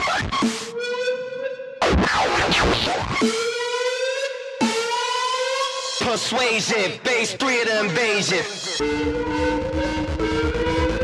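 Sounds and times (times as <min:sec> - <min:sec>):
siren-like synth note rising: 0:00.4 - 0:06.0, 0:08.7 - 0:11.0
falling synth sweeps: 0:08.8 - 0:11.0.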